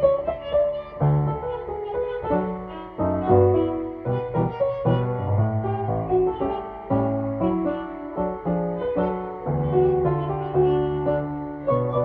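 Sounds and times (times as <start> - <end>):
piano bass notes: 0.0 - 12.0
violin playing a tango: 0.0 - 12.0.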